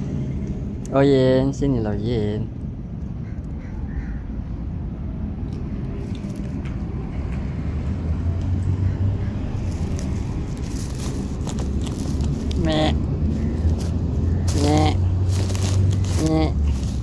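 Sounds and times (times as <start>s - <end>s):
low background rumble: 0.0s - 17.0s
cloth rustling and crackling: 9.6s - 17.0s.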